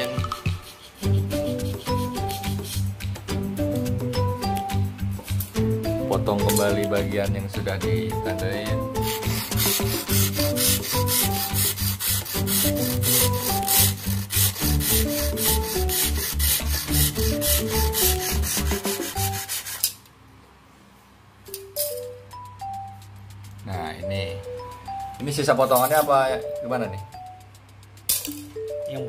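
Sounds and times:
background music: 0.0s - 19.6s, 21.5s - 29.0s
hacksaw sawing: 0.4s - 2.9s, 9.0s - 20.0s.

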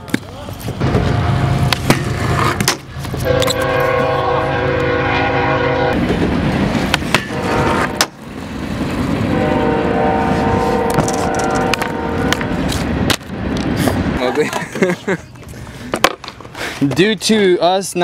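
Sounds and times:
skateboard wheels rolling on concrete: 0.0s - 4.2s, 6.0s - 18.0s.

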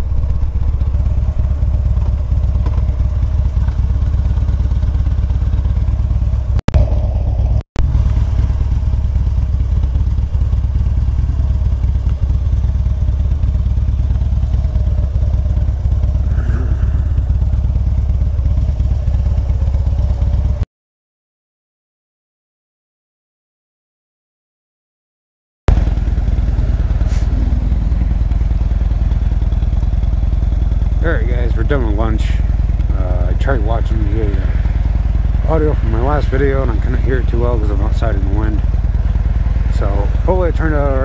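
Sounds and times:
motorcycle engine running: 0.0s - 20.6s, 25.7s - 41.0s.

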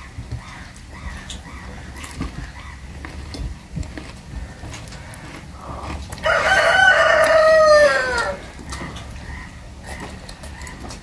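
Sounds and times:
rooster crowing: 6.2s - 8.5s.

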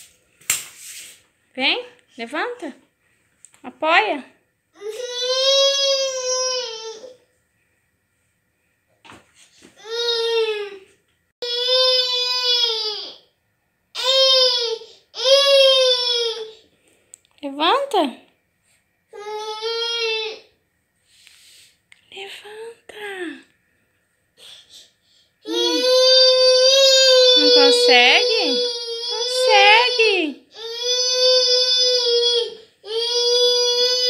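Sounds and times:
toddler crying: 25.5s - 34.0s.

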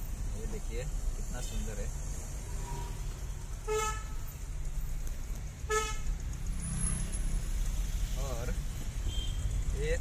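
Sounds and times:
car engine rumble: 0.0s - 10.0s
road noise: 0.0s - 10.0s
vehicle horn toots: 3.7s - 4.2s, 5.7s - 6.1s, 9.0s - 9.5s.

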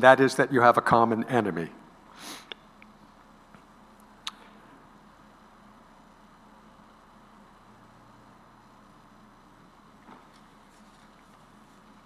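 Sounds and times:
man sniffing: 2.1s - 2.6s.

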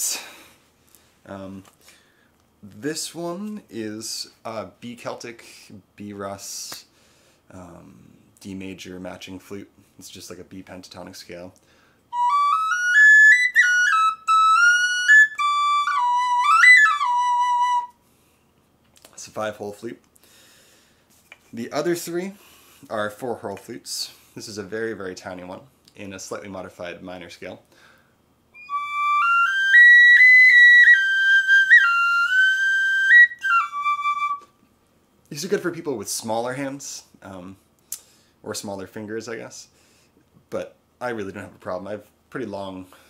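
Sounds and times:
pocket flute melody: 12.1s - 18.0s, 28.6s - 34.6s.

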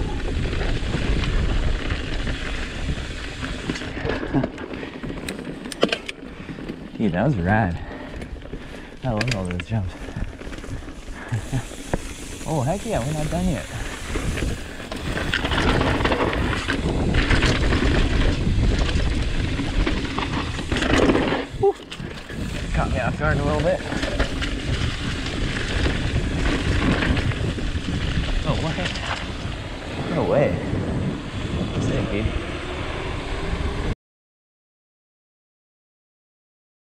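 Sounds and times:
wind buffeting microphone: 0.0s - 4.9s, 6.3s - 34.0s
bike tyres rolling over dirt: 0.0s - 33.9s.

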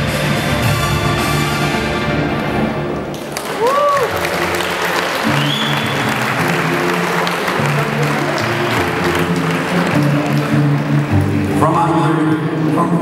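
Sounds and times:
music from sound system: 0.0s - 3.3s
audience applauding: 2.4s - 13.0s
high whistle from crowd: 5.3s - 6.1s.

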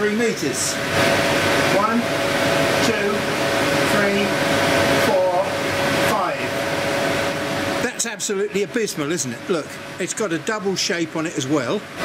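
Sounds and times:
rushing air from blowers: 0.0s - 10.2s.

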